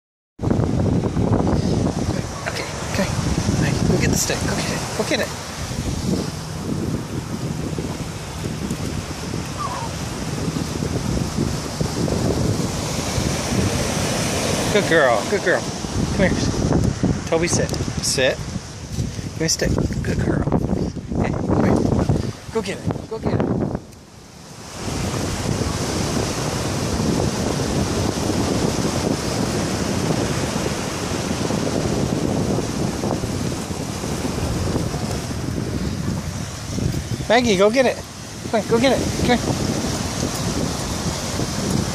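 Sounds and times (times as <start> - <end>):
small waves breaking on sand: 0.4 - 41.9
wind buffeting microphone: 0.4 - 41.9.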